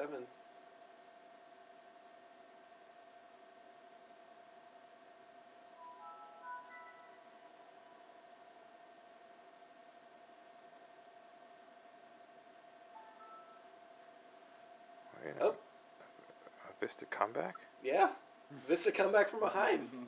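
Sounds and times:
faint steady whine: 0.0s - 20.0s
startup chime: 5.8s - 8.1s, 13.0s - 13.7s.

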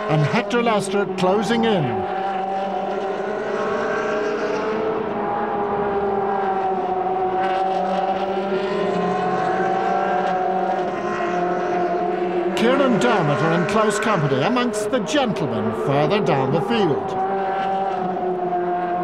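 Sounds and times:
race car engine running: 0.0s - 19.0s
man's voice: 0.1s - 2.0s, 12.6s - 17.2s.

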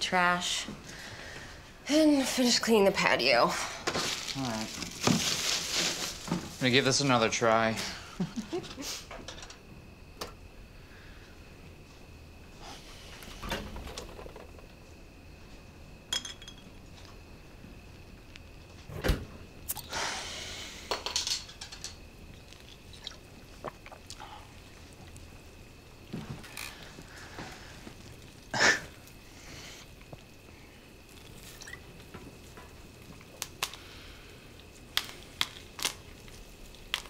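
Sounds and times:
rustling hiss: 0.8s - 9.3s, 19.5s - 37.0s
faint high hum: 6.1s - 37.0s.

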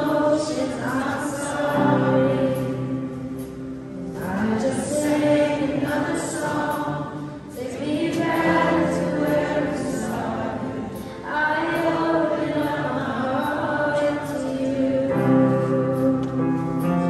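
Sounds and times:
voices singing together: 0.0s - 17.0s
worship band playing: 0.0s - 17.0s.

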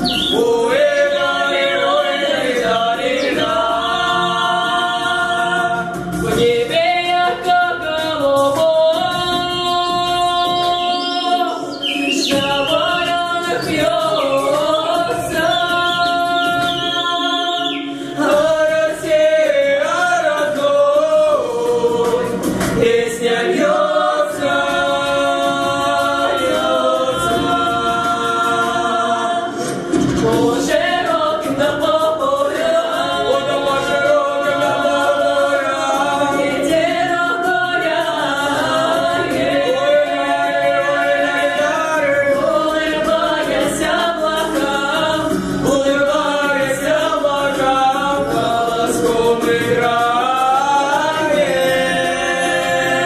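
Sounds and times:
vocal group singing in harmony: 0.0s - 53.0s.

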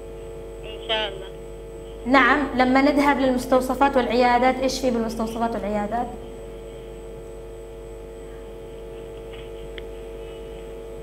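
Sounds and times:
telephone line electrical hum: 0.0s - 11.0s.

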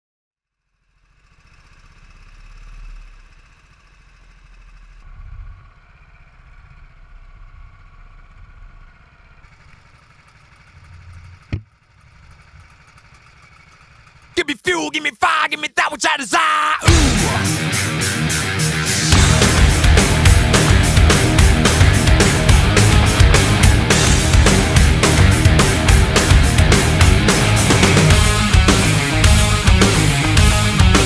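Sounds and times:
go-kart engines rumbling: 0.8s - 14.4s.

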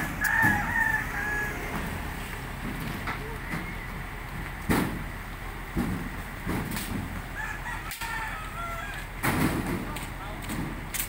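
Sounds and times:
rooster crowing: 0.0s - 2.1s, 3.2s - 4.2s, 7.3s - 9.1s.

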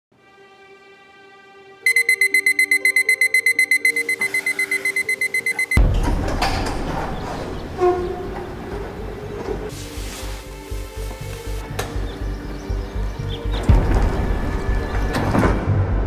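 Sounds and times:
soft music: 0.1s - 16.0s
alarm clock beeping rapidly: 1.9s - 5.8s.

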